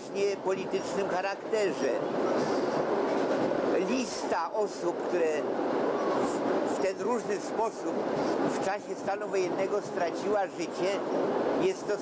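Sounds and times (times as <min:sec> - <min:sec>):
train carriage rumble: 0:00.0 - 0:12.0
man's voice: 0:03.7 - 0:05.5, 0:06.7 - 0:11.0, 0:11.6 - 0:12.0.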